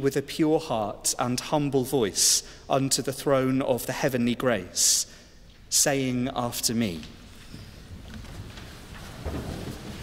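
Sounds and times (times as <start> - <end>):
people shifting in wooden stalls: 6.8 - 10.0.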